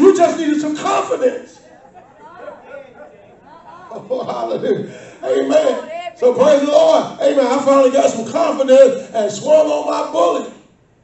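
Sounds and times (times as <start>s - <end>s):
speech into a microphone: 0.0s - 10.6s.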